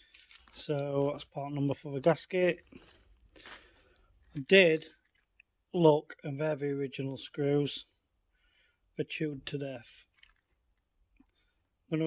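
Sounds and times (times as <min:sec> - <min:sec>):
man speaking: 0:00.6 - 0:02.7, 0:04.3 - 0:05.0, 0:05.8 - 0:07.9, 0:09.0 - 0:10.1.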